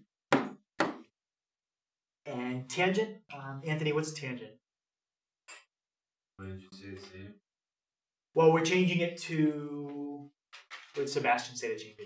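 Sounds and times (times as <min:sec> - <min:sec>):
sharp knocks: 0:00.3 - 0:01.1.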